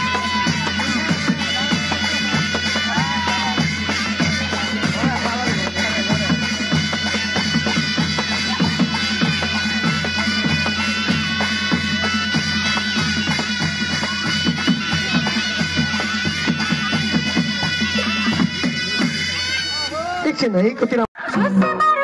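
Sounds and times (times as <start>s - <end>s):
fast hand drum beating: 0.0s - 19.4s
reed pipes playing melody: 0.0s - 20.6s.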